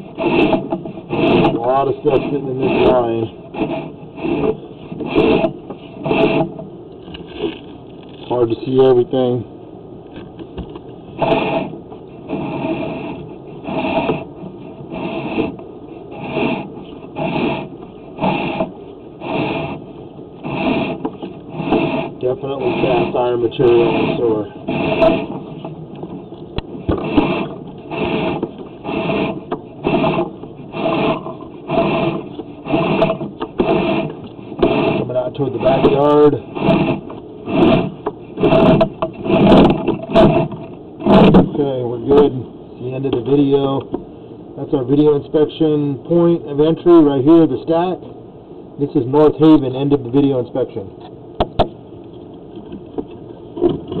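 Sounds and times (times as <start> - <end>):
cable scraping rasp: 0.0 - 8.5, 11.1 - 42.3.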